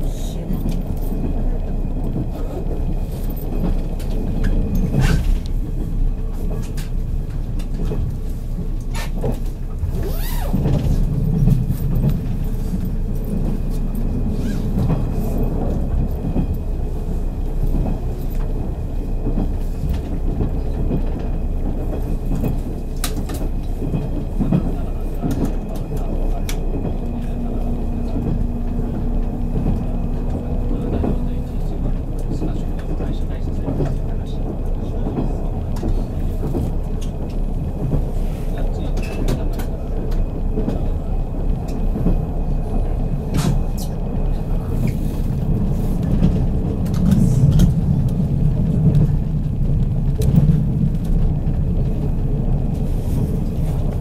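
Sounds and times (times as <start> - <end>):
train running rumble: 0.0 - 54.0.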